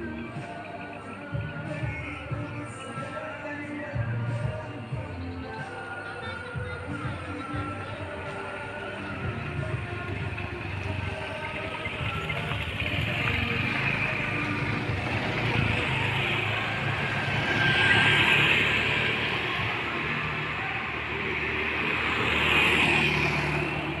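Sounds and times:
road vehicles passing: 0:00.0 - 0:24.0.

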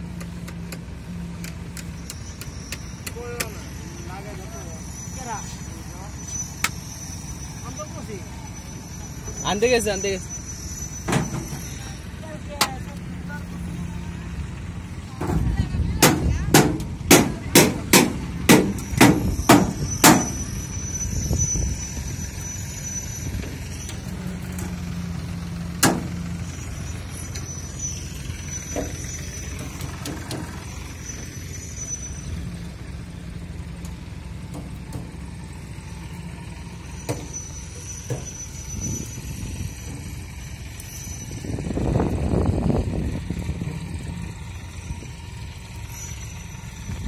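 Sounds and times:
engine humming: 0:00.0 - 0:47.0.

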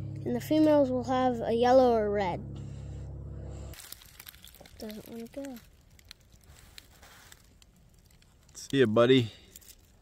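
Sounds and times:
low steady hum: 0:00.0 - 0:06.8
dry leaves crunching: 0:03.7 - 0:08.6.

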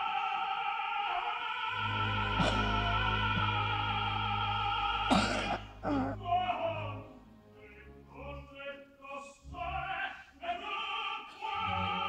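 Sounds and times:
operatic singing: 0:00.0 - 0:12.0
loud coughs: 0:02.4 - 0:02.8, 0:05.1 - 0:06.2.

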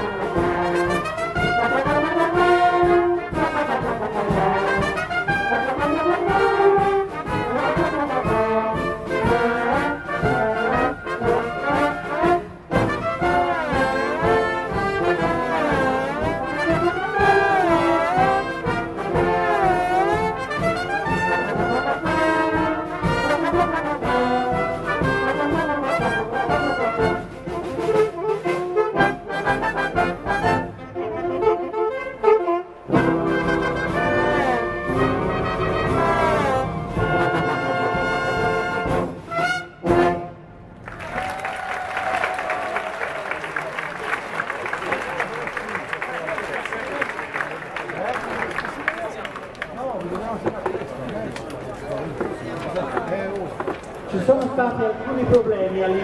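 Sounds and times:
wind band with brass melody: 0:00.0 - 0:49.4, 0:50.1 - 0:56.0.

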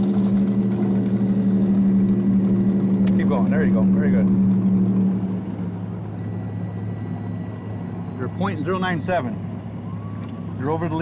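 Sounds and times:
high electronic tone: 0:00.0 - 0:04.4, 0:06.2 - 0:09.2
boat engine idling: 0:00.0 - 0:11.0.

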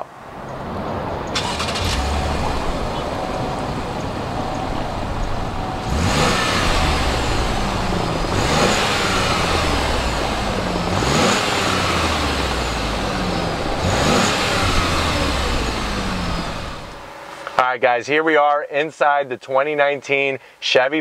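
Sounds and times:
car engine idling and revving: 0:00.3 - 0:17.6.

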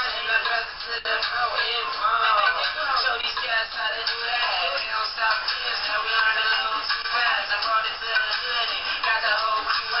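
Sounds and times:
man rapping over hip-hop beat: 0:00.0 - 0:10.0.

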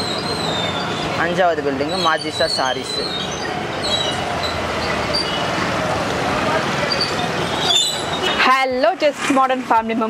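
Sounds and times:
crowd noise: 0:00.0 - 0:10.0
traffic: 0:00.0 - 0:10.0.

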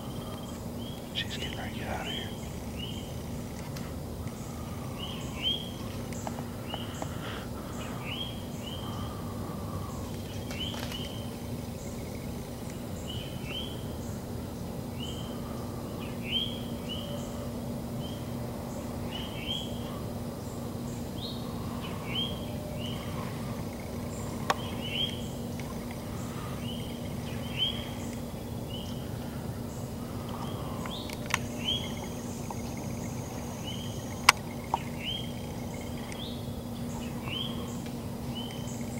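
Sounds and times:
steady low hum: 0:00.0 - 0:38.9.

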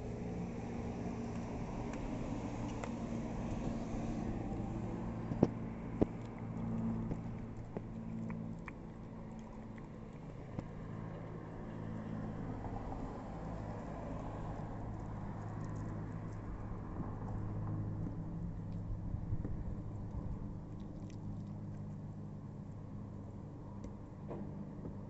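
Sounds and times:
low mechanical hum: 0:00.0 - 0:25.0.

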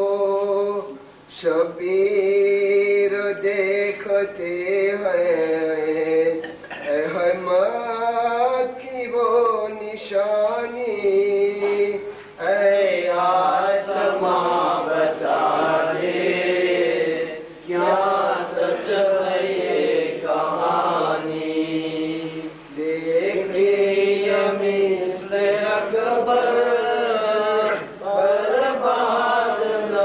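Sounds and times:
person chanting: 0:00.0 - 0:30.0.

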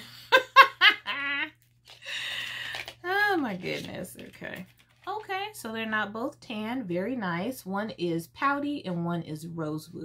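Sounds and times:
woman giggling: 0:00.0 - 0:02.3.

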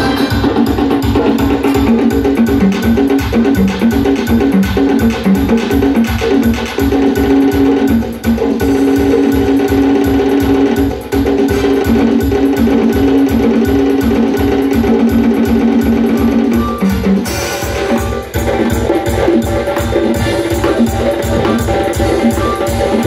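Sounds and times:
keyboard melody of held notes: 0:00.0 - 0:05.5, 0:11.5 - 0:23.0
electronic drum kit beat: 0:00.0 - 0:23.0.

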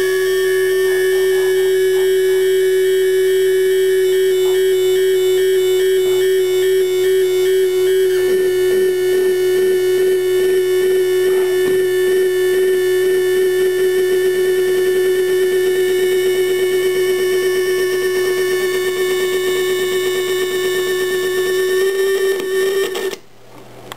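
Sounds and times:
fluttering electronic tone: 0:00.0 - 0:23.2.

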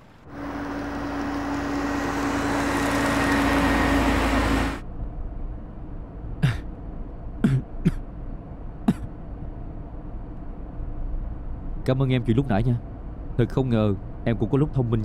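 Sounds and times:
car driving past: 0:00.0 - 0:04.8
man coughing: 0:06.4 - 0:06.7, 0:07.4 - 0:08.0, 0:08.9 - 0:09.1.

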